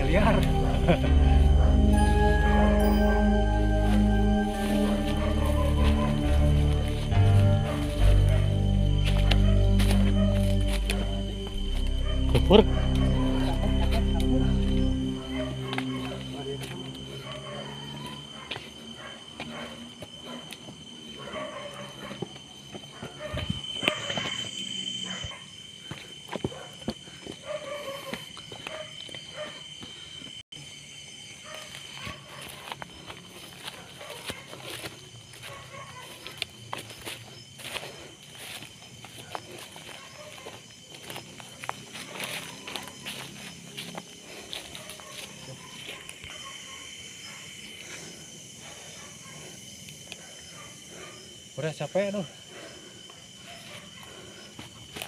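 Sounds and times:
footsteps crunching through grass: 0.0 - 20.9, 31.5 - 46.6
high-pitched insect trill: 0.0 - 55.0.

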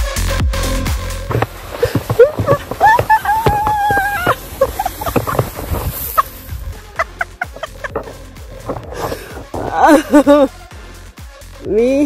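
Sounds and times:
music with gliding tones: 0.0 - 11.7.

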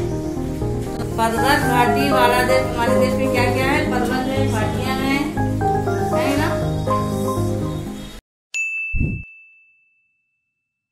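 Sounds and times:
bright ding: 8.6 - 10.3.

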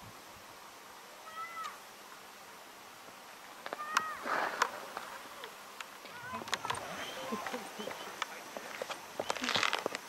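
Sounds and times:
bird calling: 6.1 - 9.8.

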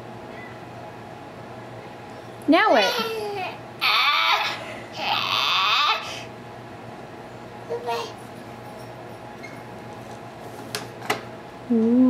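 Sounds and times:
baby squealing: 2.8 - 6.2.

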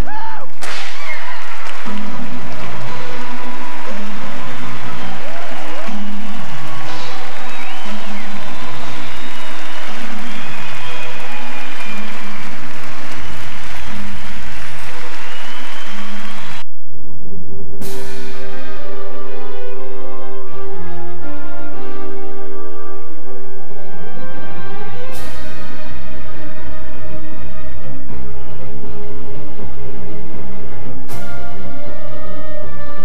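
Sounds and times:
audience applauding and cheering: 0.0 - 16.6
music with pulsing beat: 0.0 - 16.6
sharp crack: 0.5 - 16.6.

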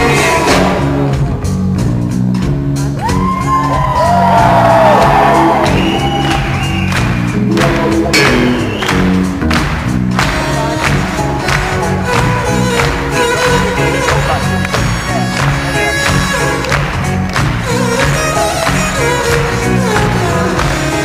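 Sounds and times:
drum kit beat: 0.0 - 21.0
long gliding high notes: 5.6 - 9.7
violin: 10.2 - 21.0.

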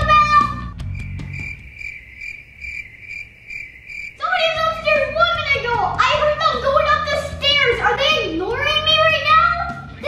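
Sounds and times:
cricket chirping: 0.8 - 4.8.

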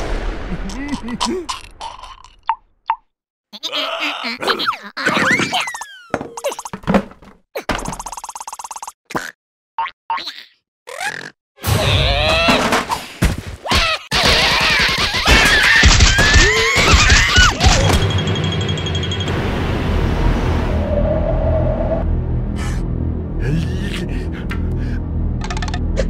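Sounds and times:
wordless squeals and grunts: 3.6 - 6.6, 13.6 - 17.9
comic music: 17.2 - 26.0.

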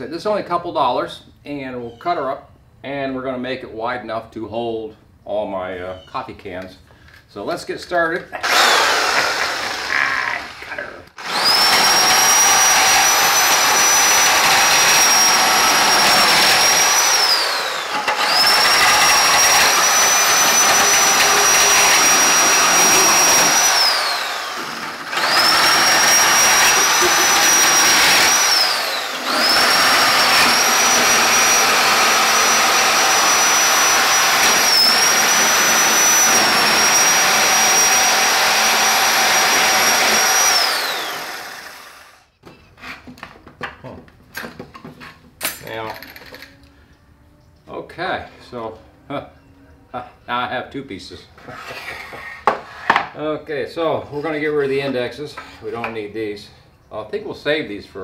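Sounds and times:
reciprocating saw cutting wood: 8.4 - 42.3.

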